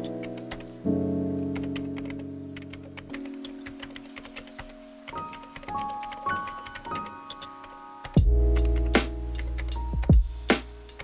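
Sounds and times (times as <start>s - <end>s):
keyboard typing clicks: 1.6s - 9.8s.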